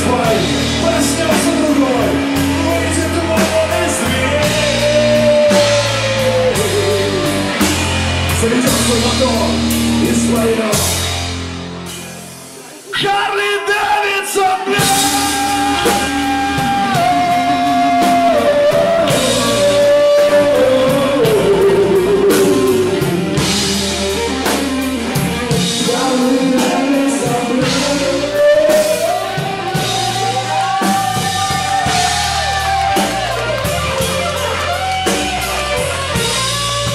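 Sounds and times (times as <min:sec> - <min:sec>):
blues-rock band playing: 0:00.0 - 0:36.9.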